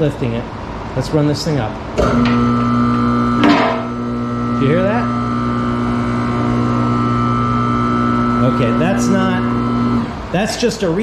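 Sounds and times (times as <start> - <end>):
hydraulic lift motor humming: 1.8 - 10.4.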